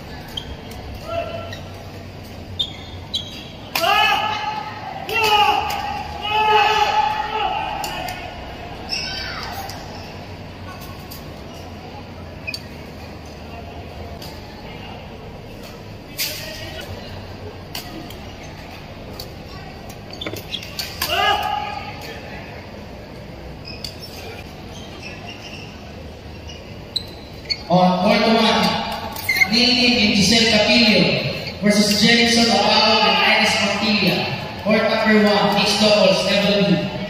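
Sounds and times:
echoing hall background noise: 0.0s - 37.0s
high-pitched shoe squeals: 2.5s - 3.6s, 8.8s - 10.2s, 23.6s - 27.8s, 29.2s - 29.8s.

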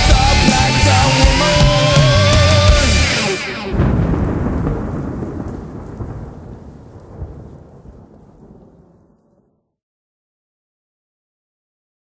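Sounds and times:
rolling thunder: 3.1s - 9.6s
rain: 3.7s - 9.6s.

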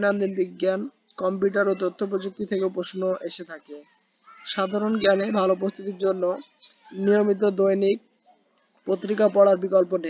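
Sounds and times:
person reading aloud: 0.0s - 8.0s, 8.9s - 10.0s.

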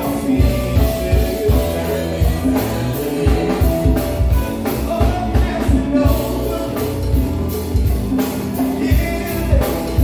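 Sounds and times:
drums: 0.0s - 10.0s
keyboard: 0.0s - 10.0s.

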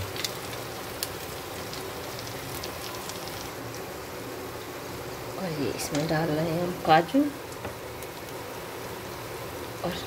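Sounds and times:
soft sizzle of frying: 0.0s - 10.0s.

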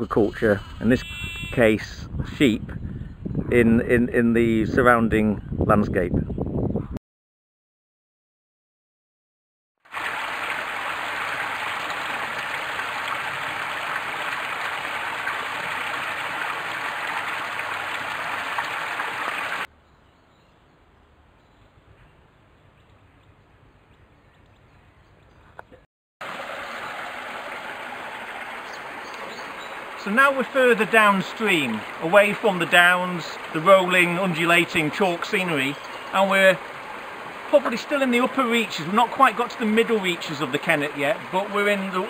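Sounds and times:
stream water over gravel: 9.9s - 19.7s, 26.2s - 42.0s
water pouring from pipes: 9.9s - 19.7s.

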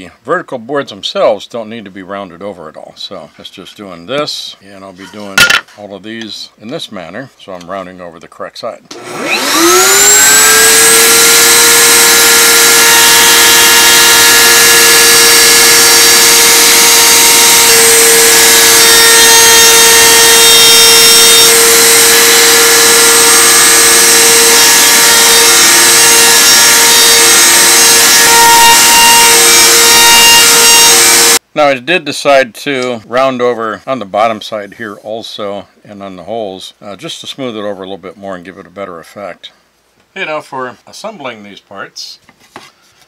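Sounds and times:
wood router high whine: 8.9s - 31.4s.

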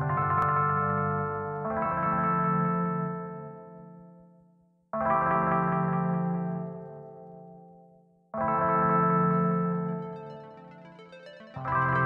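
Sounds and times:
ambient electronic chords: 8.6s - 12.0s.

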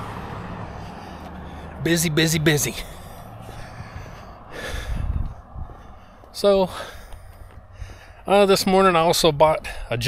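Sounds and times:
low outdoor rumble: 0.0s - 10.0s
person breathing out hard: 0.5s - 1.8s, 2.8s - 8.3s.

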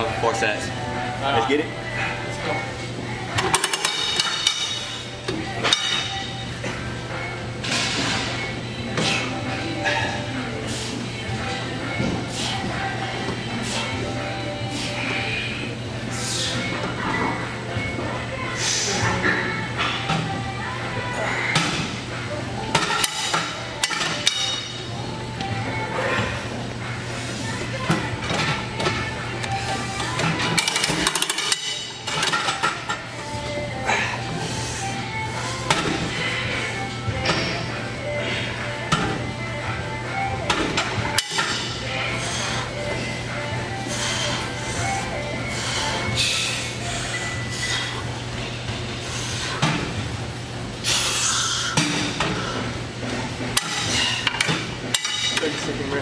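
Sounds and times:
background music: 0.0s - 50.2s
gym weight stacks clanking: 3.4s - 6.4s, 22.7s - 24.8s, 30.0s - 33.1s, 53.4s - 55.9s.

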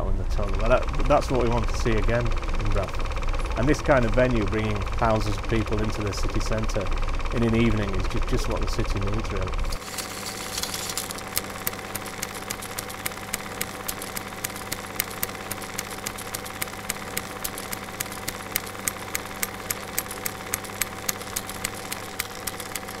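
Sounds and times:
projector mechanical hum: 0.0s - 23.0s
projector clicks: 4.0s - 23.0s.

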